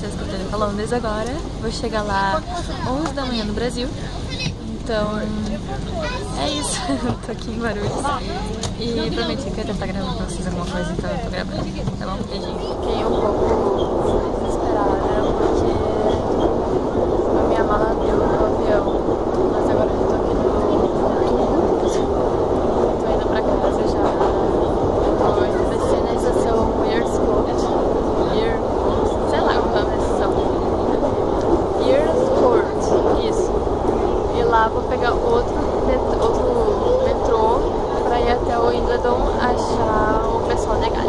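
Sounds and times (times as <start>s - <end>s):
underground train rumbling: 0.0s - 41.0s
voices talking: 0.0s - 41.0s.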